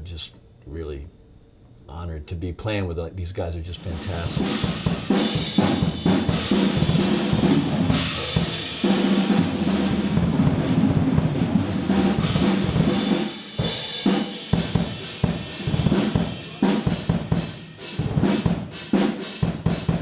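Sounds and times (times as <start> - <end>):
drum kit: 3.8 - 20.0
band playing: 3.9 - 18.8.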